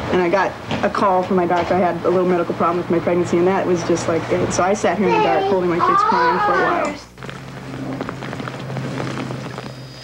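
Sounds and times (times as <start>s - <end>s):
low hum: 6.7s - 10.0s.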